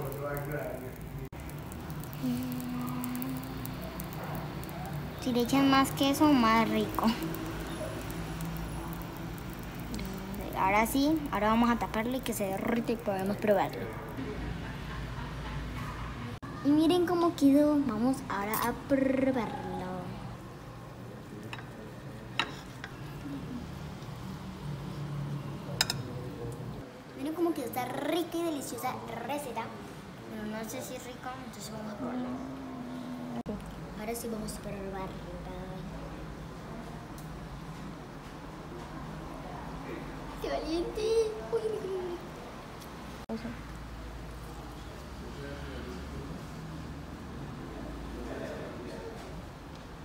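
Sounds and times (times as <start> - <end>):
woman humming: 2.1 - 3.8, 9.9 - 10.6, 32.0 - 33.6.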